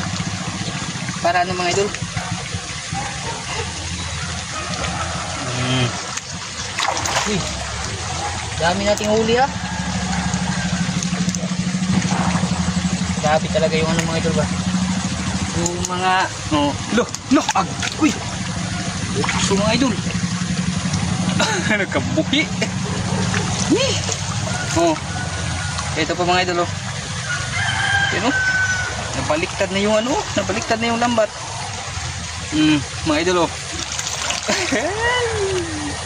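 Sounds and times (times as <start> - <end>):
low background rumble: 0.0 - 36.0
motor running drone: 0.0 - 36.0
water trickling and splashing: 0.0 - 36.0
rooster crowing: 4.2 - 5.6, 9.4 - 11.3, 24.4 - 26.1, 27.2 - 29.3.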